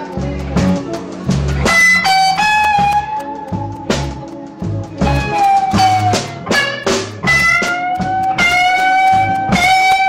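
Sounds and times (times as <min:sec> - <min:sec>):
bass notes: 0:00.0 - 0:10.0
electric guitar playing blues: 0:00.0 - 0:10.0.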